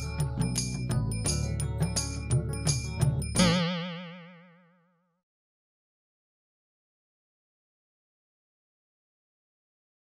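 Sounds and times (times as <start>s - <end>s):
wobbling held music note: 3.4s - 4.7s.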